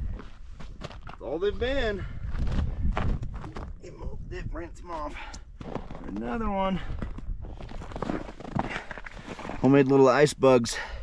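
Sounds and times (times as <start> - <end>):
footsteps crunching on snow: 7.0 - 9.8.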